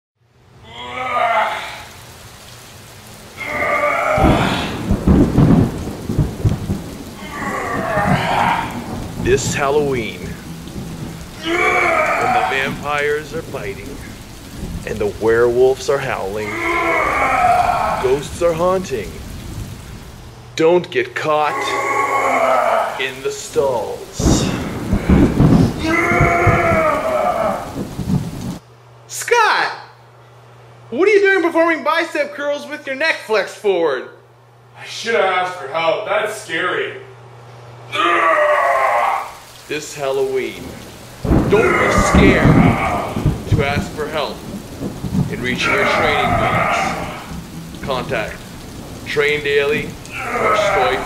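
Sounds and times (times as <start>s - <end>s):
rain: 0.2s - 32.0s, 32.6s - 51.0s
rolling thunder: 1.1s - 20.4s, 21.4s - 28.6s, 38.0s - 51.0s.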